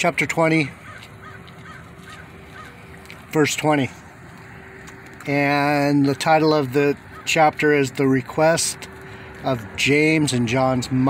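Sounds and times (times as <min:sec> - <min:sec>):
outdoor background noise: 0:00.0 - 0:11.0
faint bird calls: 0:00.7 - 0:03.2.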